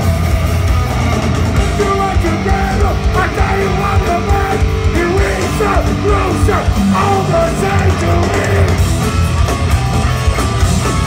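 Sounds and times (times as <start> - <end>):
heavy metal band playing live: 0.0 - 11.0.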